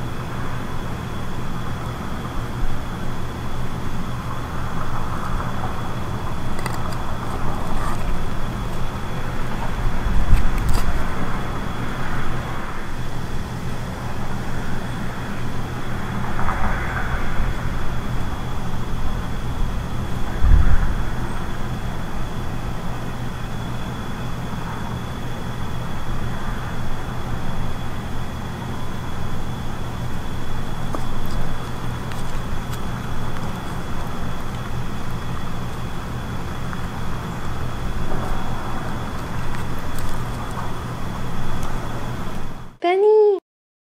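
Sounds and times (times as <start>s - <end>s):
low rumbling surges: 0.0s - 42.8s
low rumbling hum: 0.0s - 42.9s.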